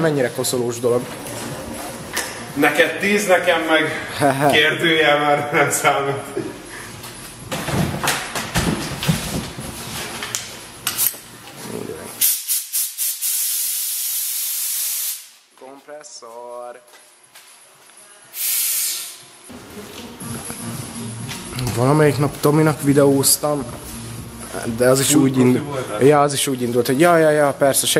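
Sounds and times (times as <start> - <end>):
air blow gun hissing: 12.2 - 15.4, 18.3 - 19.3.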